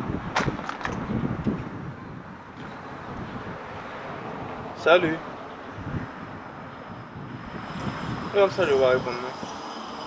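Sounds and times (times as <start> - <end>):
street background noise: 0.0 - 10.0.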